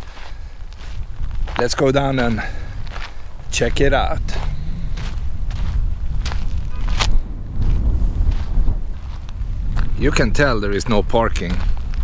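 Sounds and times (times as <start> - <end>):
footsteps walking: 0.0 - 10.1, 11.3 - 12.0
steady low rumble: 0.0 - 12.0.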